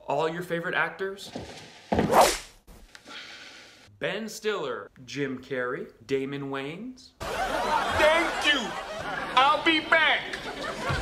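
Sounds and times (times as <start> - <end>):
sharp whip lash: 2.0 - 2.6.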